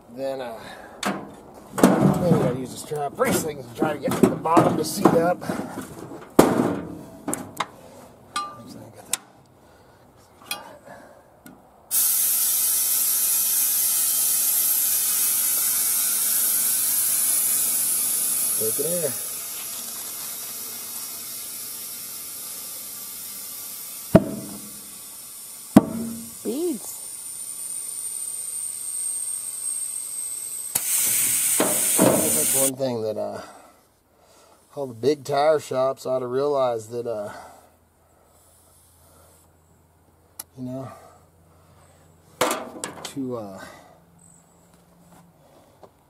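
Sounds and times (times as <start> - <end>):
compressed air hissing: 11.9 - 32.7
tire beads popping: 11.9 - 32.7.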